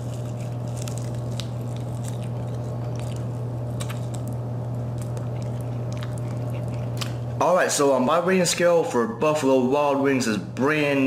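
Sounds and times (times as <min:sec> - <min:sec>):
person chewing chicken wing: 0:00.0 - 0:07.4
steady low hum: 0:00.0 - 0:11.0.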